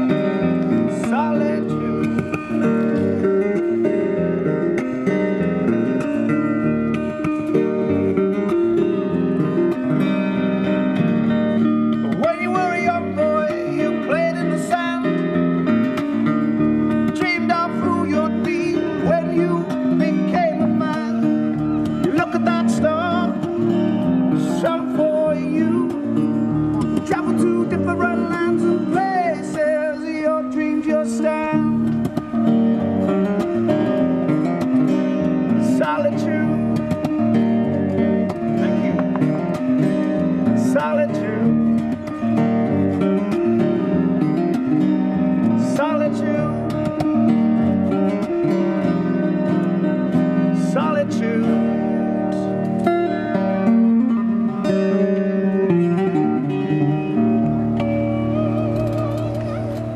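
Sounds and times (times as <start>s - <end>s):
acoustic guitar fingerstyle: 0.0s - 59.9s.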